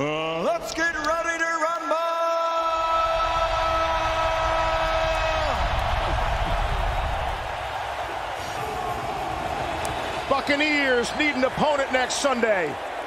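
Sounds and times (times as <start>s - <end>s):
stadium crowd cheering: 0.4s - 13.0s.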